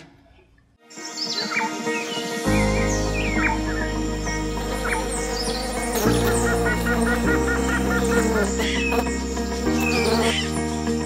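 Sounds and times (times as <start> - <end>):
birds chirping: 0.2 - 11.0
background music chords: 0.8 - 11.0.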